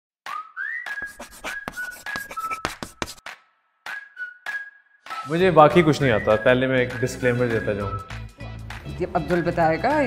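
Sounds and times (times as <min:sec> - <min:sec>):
whistled tune: 0:00.2 - 0:02.7, 0:03.8 - 0:08.5, 0:09.2 - 0:10.0
scratchy chalk-like strokes: 0:01.0 - 0:03.2.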